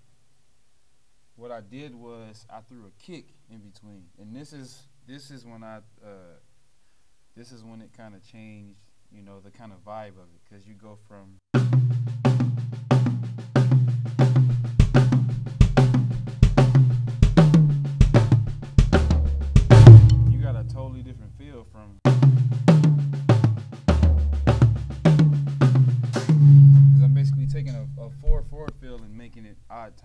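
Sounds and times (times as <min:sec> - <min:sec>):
bass drum kick: 0:13.7 - 0:21.4, 0:22.1 - 0:29.2
hand strokes on drums: 0:26.1 - 0:29.4.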